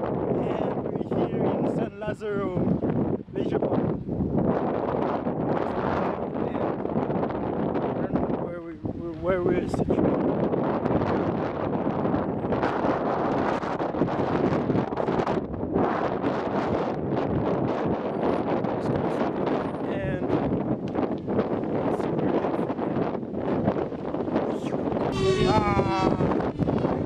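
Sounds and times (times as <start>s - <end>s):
wind buffeting microphone: 0.0s - 27.0s
man talking: 0.4s - 2.7s, 3.4s - 3.8s, 8.0s - 10.1s, 19.8s - 20.4s, 21.8s - 22.8s, 24.5s - 27.0s
loud raised voice: 24.6s - 27.0s.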